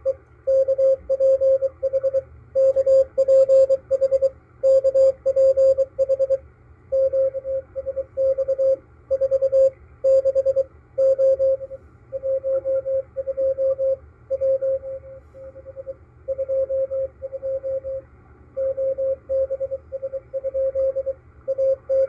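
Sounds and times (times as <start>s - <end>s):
morse code beeps: 0.0s - 18.0s, 18.6s - 22.0s
faint radio static: 11.4s - 22.0s.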